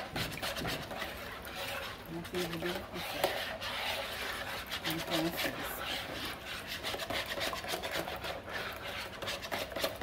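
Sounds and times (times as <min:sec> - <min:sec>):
whisk beating in plastic bowl: 0:00.0 - 0:10.0.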